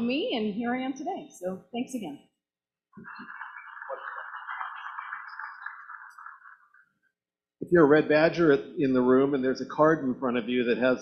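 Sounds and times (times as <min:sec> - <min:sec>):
audience applauding: 0:03.0 - 0:06.8.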